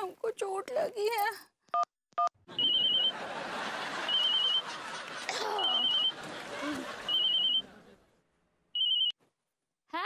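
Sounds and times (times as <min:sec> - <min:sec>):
mobile phone ringing trill: 0:02.5 - 0:03.3, 0:04.0 - 0:04.7, 0:05.7 - 0:06.2, 0:07.0 - 0:07.7, 0:08.8 - 0:09.2.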